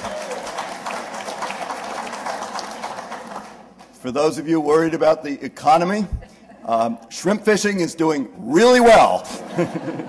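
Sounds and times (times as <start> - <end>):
audience laughing: 9.3 - 10.0.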